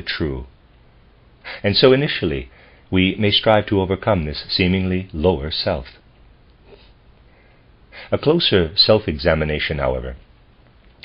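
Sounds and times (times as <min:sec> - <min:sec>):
room hiss: 0:00.0 - 0:11.0
faint breath: 0:01.4 - 0:01.6, 0:02.5 - 0:02.9, 0:06.6 - 0:08.1.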